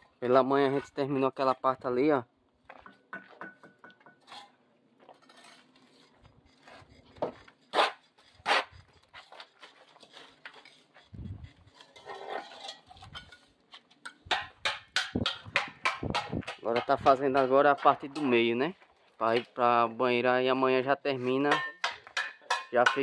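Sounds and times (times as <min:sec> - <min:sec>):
bricks knocking and clinking: 0:02.7 - 0:04.3, 0:12.0 - 0:17.9, 0:21.5 - 0:23.0.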